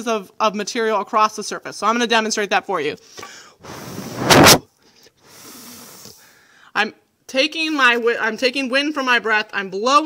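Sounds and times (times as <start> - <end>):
person blowing breath: 3.2 - 6.7.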